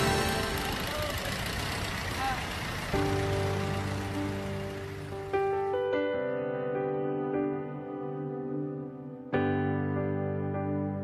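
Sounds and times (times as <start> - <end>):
held chord: 0.0 - 1.5, 3.0 - 11.0
instrumental ballad: 3.0 - 11.0.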